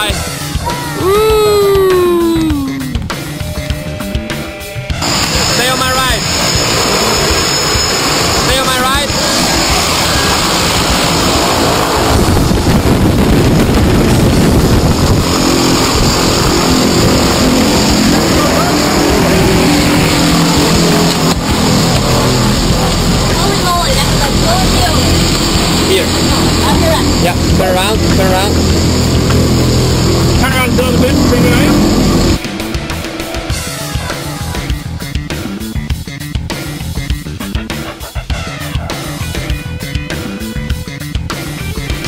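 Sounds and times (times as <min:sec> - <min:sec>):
low engine drone: 0:00.0 - 0:42.0
propeller wash roar: 0:00.0 - 0:42.0.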